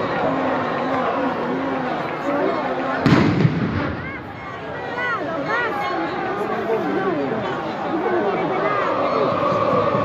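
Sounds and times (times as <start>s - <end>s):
voices: 0.0s - 10.0s
loud rumbling bang: 3.0s - 4.0s.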